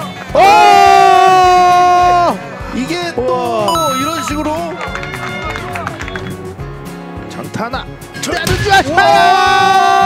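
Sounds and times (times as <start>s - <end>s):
background music with steady beat: 0.0s - 9.0s.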